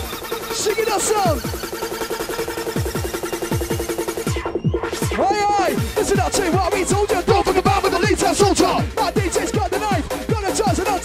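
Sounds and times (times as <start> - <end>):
bouncy repeated bass stabs: 0.0 - 11.0
hard dance music: 0.0 - 11.0.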